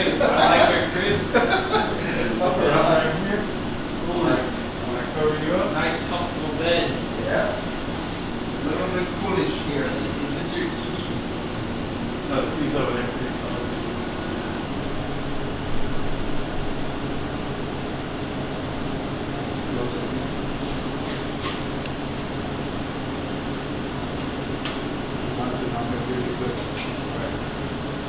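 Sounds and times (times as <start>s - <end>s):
high whine: 0.0s - 28.0s
mechanical hum and rushing air: 0.0s - 28.0s.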